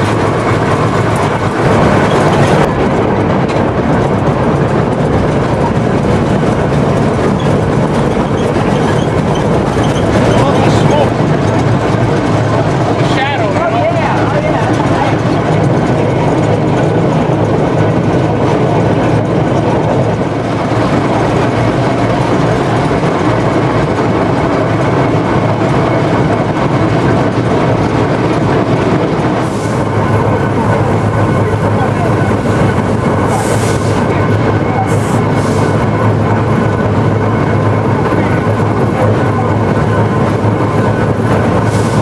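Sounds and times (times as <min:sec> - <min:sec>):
steam locomotive running: 0:00.0 - 0:42.0.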